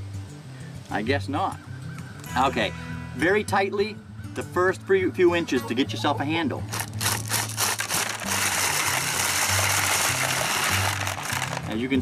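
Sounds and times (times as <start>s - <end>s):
background music with bass: 0.0s - 12.0s
kernels spraying into bucket: 6.7s - 11.8s.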